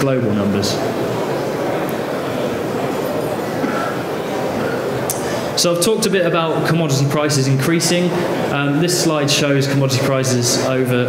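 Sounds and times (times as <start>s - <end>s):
exhibition hall din: 0.0s - 11.0s.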